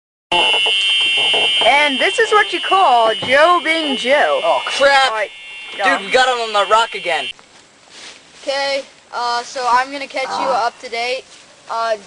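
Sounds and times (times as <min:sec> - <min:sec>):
high-pitched buzzer tone: 0:00.3 - 0:07.4, 0:10.2 - 0:10.9
person speaking: 0:01.6 - 0:07.3, 0:08.4 - 0:12.0.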